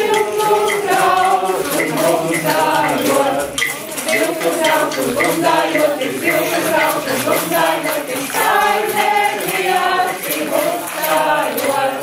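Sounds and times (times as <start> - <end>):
voices singing a folk song: 0.0 - 12.0.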